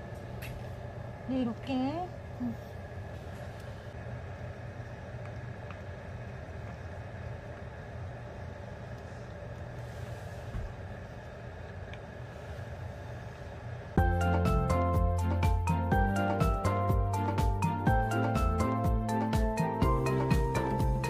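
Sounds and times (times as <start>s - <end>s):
appliance humming with high whine: 0.0s - 21.0s.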